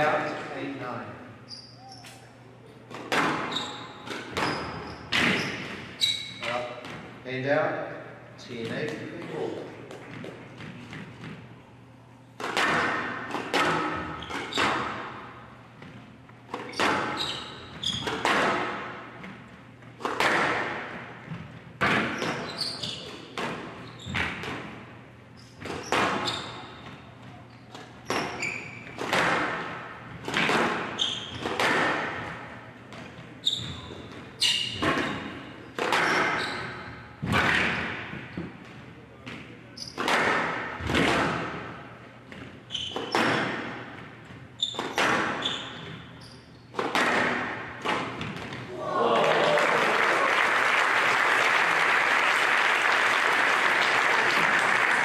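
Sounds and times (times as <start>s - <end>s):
squash ball cracking off rackets: 12.4s - 15.2s, 17.9s - 19.4s, 20.0s - 24.7s, 27.7s - 33.3s, 46.7s - 48.7s.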